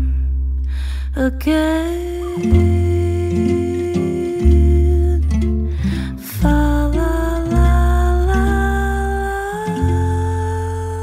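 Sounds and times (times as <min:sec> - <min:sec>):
acoustic guitar: 0:00.0 - 0:11.0
low bass notes: 0:00.0 - 0:11.0
woman singing: 0:01.1 - 0:11.0.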